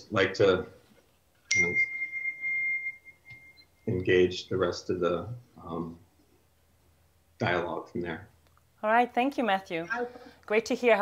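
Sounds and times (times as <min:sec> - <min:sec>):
high-pitched electronic beep: 0:01.5 - 0:03.9.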